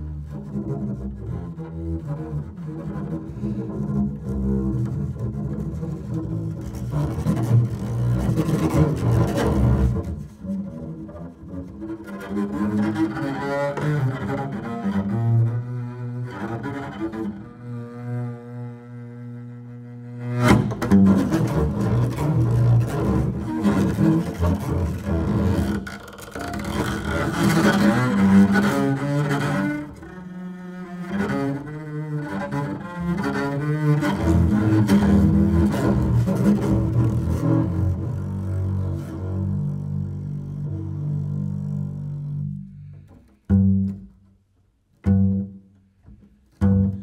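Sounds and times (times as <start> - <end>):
bowed double bass: 0.0 - 47.0.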